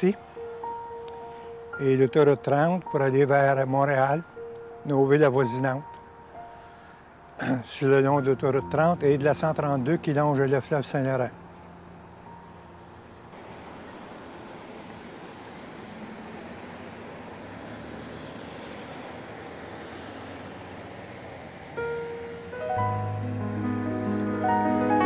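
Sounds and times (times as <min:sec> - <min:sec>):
truck driving past: 0:10.8 - 0:25.0.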